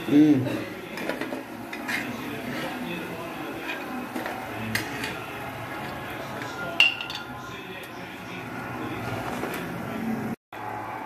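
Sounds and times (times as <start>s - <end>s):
clinks of steel kitchenware: 6.8s - 7.4s.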